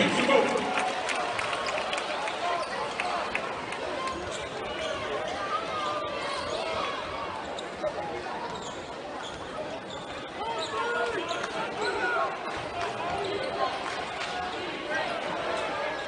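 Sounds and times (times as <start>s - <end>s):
sneaker squeaks: 2.5s - 2.8s, 4.2s - 5.6s, 6.2s - 13.7s.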